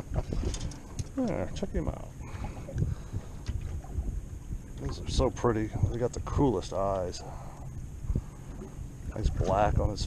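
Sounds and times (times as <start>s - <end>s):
water against boat hull: 0.0s - 10.0s
wind rumbling on microphone: 0.0s - 10.0s.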